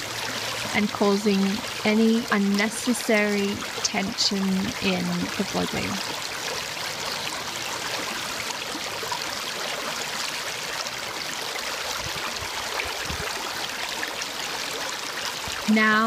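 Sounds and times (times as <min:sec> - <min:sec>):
creek water running over stones: 0:00.0 - 0:16.0.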